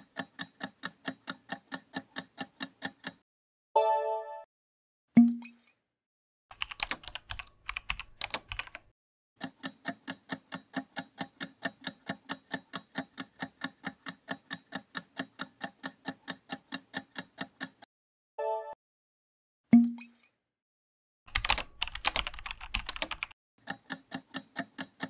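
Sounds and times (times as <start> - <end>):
clock ticking fast: 0.0 - 3.2, 9.4 - 17.9, 21.4 - 25.0
keyboard typing clicks: 6.5 - 17.9, 21.3 - 25.0.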